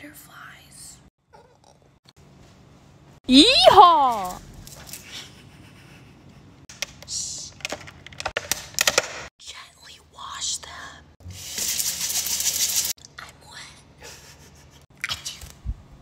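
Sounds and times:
soft whispering: 9.4 - 11.2, 13.2 - 14.0
tap water running: 11.3 - 12.9.

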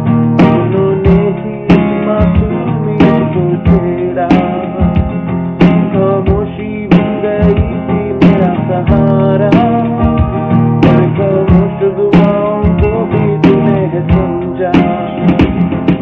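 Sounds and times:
acoustic guitar strumming chords: 0.0 - 16.0.

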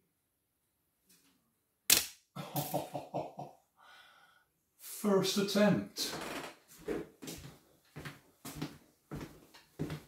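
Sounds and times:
man laughing: 2.4 - 3.7.

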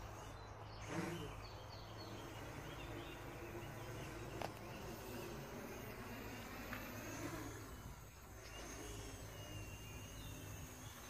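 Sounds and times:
distant quadcopter buzz: 0.0 - 11.0.

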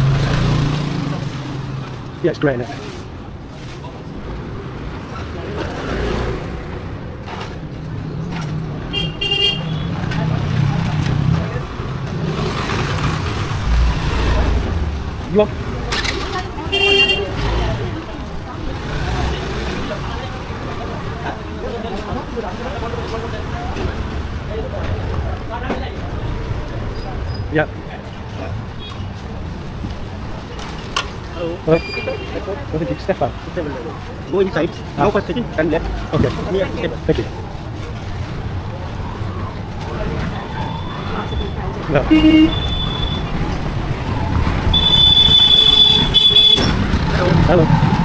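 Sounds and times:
street traffic noise: 0.0 - 48.0
vehicle horn honk: 8.9 - 9.9, 16.7 - 17.4, 42.1 - 43.2, 44.7 - 46.7.

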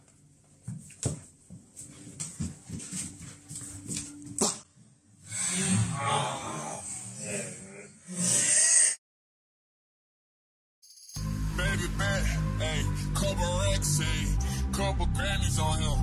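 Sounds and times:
footsteps on wooden floor: 0.6 - 4.6
loud voices: 11.5 - 16.0.

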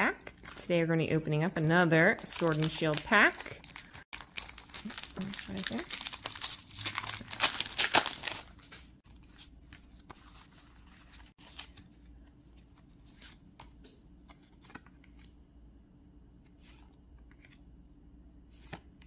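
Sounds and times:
foil wrapper tearing and crinkling: 2.2 - 8.7.

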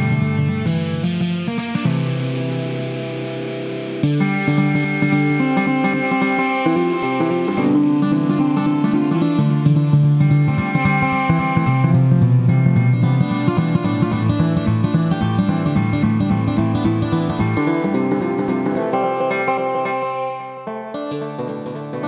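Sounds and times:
ambient new-age music: 0.0 - 22.0.

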